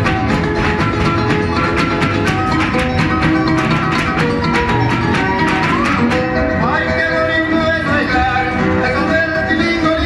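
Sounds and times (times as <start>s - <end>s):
folk music with plucked strings: 0.0s - 10.0s.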